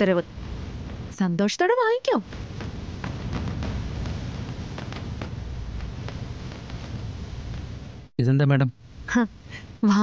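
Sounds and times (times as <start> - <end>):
low rumbling drone score: 0.0 - 9.8.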